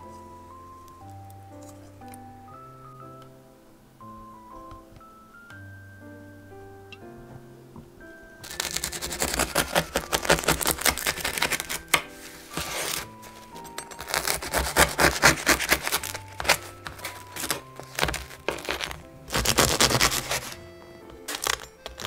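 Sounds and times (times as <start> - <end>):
light background music: 0.0 - 22.0
bread knife sawing crust: 8.5 - 13.1, 14.0 - 20.6.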